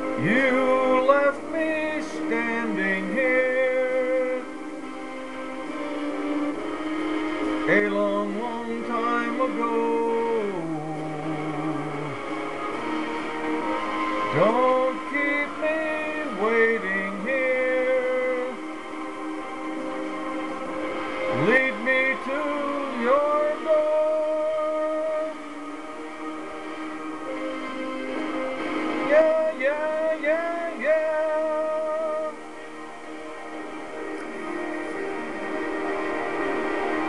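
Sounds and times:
man singing a pop ballad: 0:00.0 - 0:04.6, 0:07.6 - 0:12.3, 0:14.3 - 0:18.6, 0:21.3 - 0:25.6, 0:29.0 - 0:32.5
backing track: 0:00.0 - 0:37.0
instrumental music with held chords: 0:00.0 - 0:37.0.

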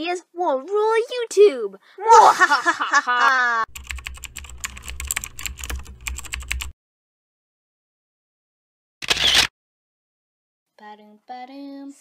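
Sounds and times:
typing on keyboard: 0:03.7 - 0:06.7.

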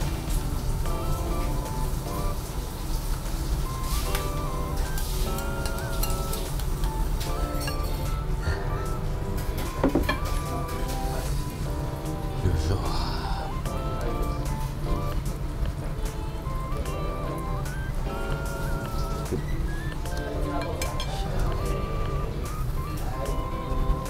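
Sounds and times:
melodic background music: 0:00.0 - 0:24.0
spoon clinking on bowl: 0:05.4 - 0:06.5, 0:07.6 - 0:08.1.

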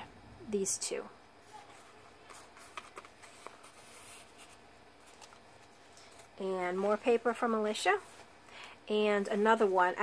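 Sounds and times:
paper rustling: 0:01.4 - 0:10.0.

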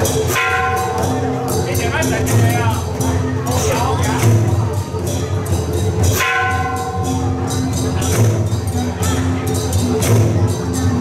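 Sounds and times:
metal bell stroke ringing: 0:00.0 - 0:02.4, 0:06.0 - 0:10.0.

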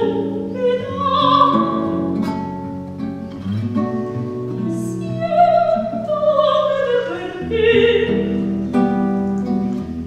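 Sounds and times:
classical guitar plucking: 0:00.0 - 0:10.0.

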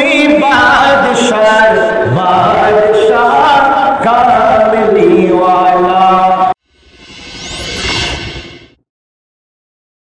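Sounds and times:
man chanting into microphone: 0:00.0 - 0:06.5
whoosh sound effect: 0:06.6 - 0:08.8.

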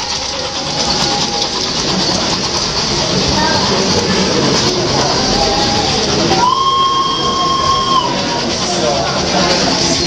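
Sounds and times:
busy hall background noise: 0:00.0 - 0:10.0
model train whistle: 0:06.3 - 0:08.4.

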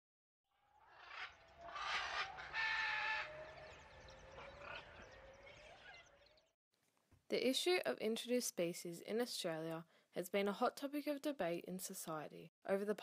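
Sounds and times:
harsh animal cries: 0:00.7 - 0:06.3.

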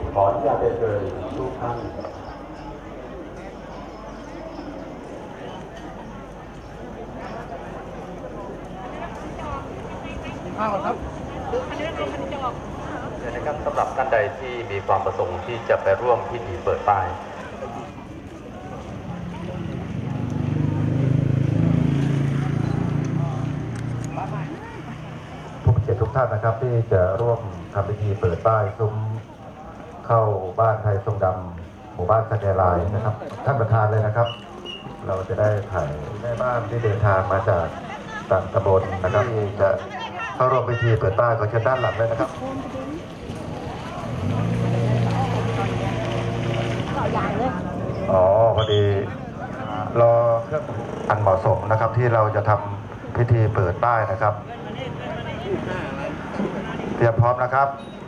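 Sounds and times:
murmur of people talking: 0:00.0 - 0:58.0.

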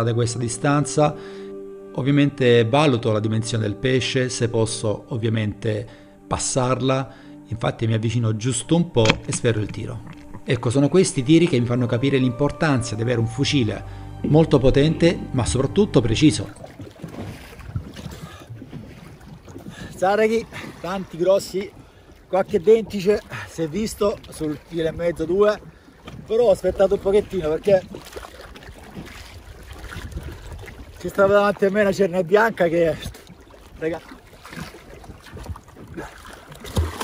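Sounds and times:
sea water splashing and lapping: 0:00.0 - 0:14.2, 0:15.2 - 0:37.0
wind noise on microphone: 0:28.6 - 0:31.4, 0:34.6 - 0:36.1.

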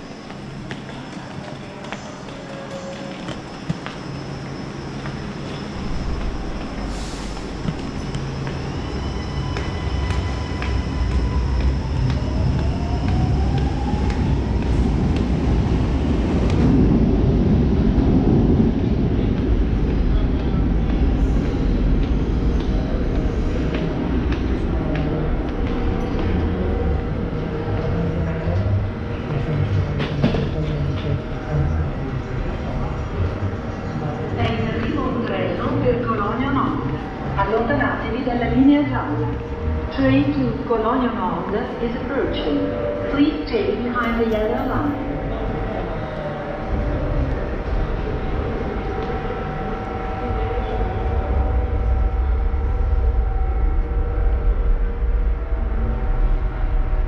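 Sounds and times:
metro train rumbling: 0:00.0 - 0:57.0
rising whine: 0:44.9 - 0:57.0.

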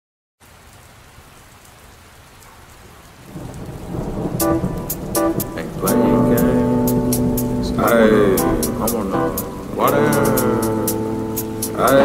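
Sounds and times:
steady rain: 0:00.4 - 0:12.0
low rumbling thunder: 0:03.3 - 0:09.8.

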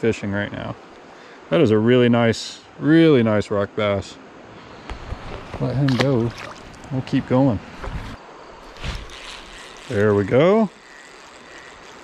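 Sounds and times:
creek water trickling: 0:04.5 - 0:12.0.

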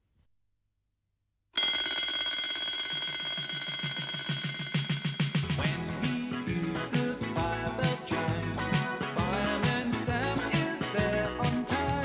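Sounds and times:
alarm clock bells ringing: 0:01.6 - 0:05.6.

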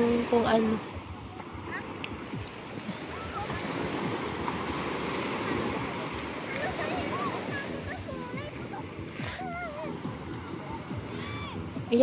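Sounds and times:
waves washing onto beach: 0:00.0 - 0:12.0.

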